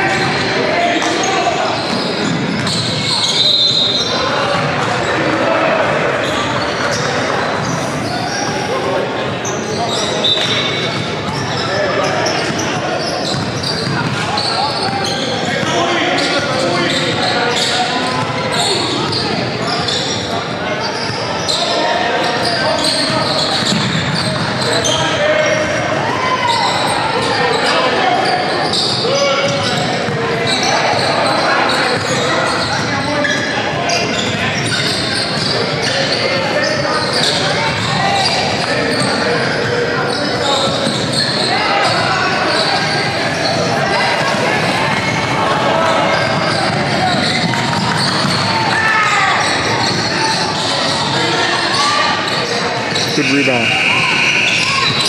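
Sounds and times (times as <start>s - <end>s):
babble of people talking: 0.0s - 55.0s.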